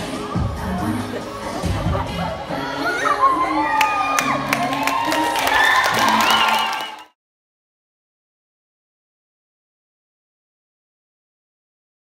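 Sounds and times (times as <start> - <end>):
girls cheering and shrieking: 1.6 - 7.0
hands clapping: 3.8 - 7.1.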